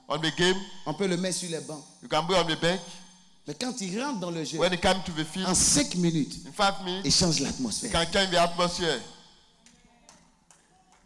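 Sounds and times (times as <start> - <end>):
person speaking: 0.0 - 9.2.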